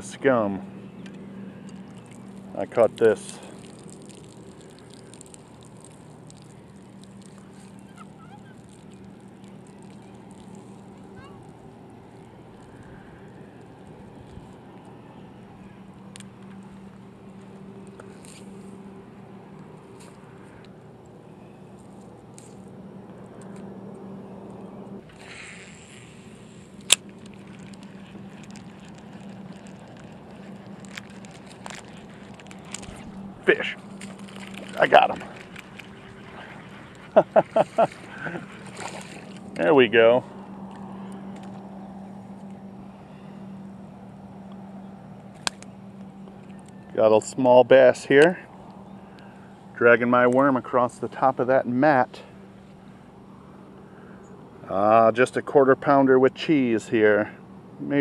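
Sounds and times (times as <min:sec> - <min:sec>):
steady low hum: 0:00.0 - 0:58.0
handling clicks and rustles: 0:26.6 - 0:42.6.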